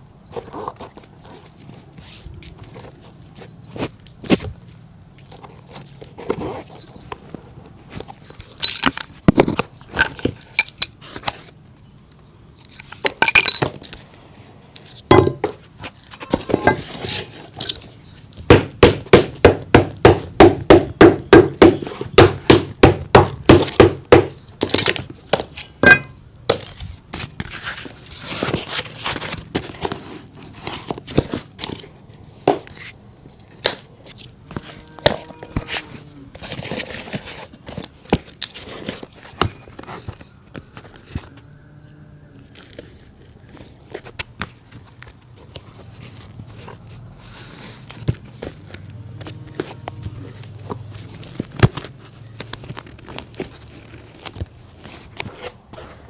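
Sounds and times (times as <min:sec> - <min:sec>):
sharp knocks on leather shoe: 0:18.5 - 0:24.4.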